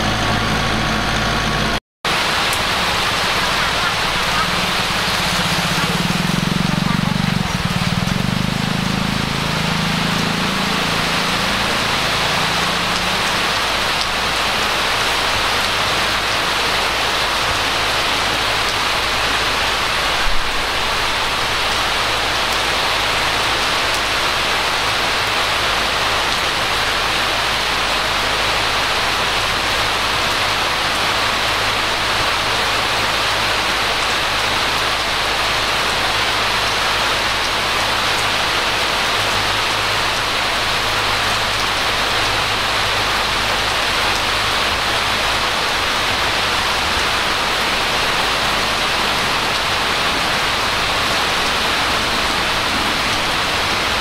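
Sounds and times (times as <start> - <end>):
steady rain hiss: 2.1 - 54.0.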